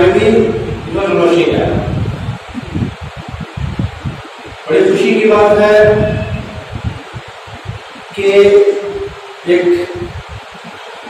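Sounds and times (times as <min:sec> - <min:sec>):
man speaking into a microphone: 0:00.0 - 0:02.2, 0:04.6 - 0:06.8, 0:08.1 - 0:10.2
low fluttering rumble: 0:00.2 - 0:04.9, 0:05.6 - 0:08.2, 0:09.9 - 0:10.8.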